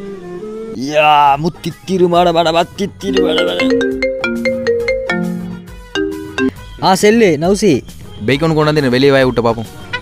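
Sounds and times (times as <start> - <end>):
phone ringtone melody: 3.0 - 6.6.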